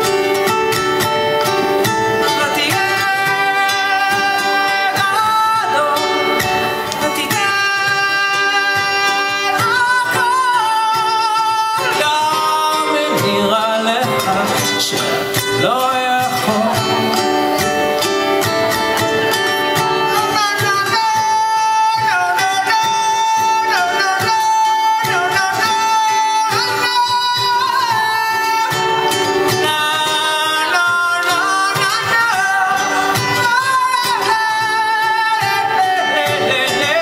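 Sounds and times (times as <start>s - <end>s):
man singing: 0.0s - 37.0s
ukulele strumming: 0.0s - 37.0s.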